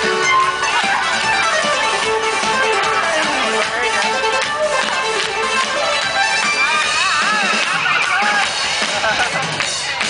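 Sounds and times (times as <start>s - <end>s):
electric guitar: 0.0s - 10.0s
live pop band playing: 0.0s - 10.0s.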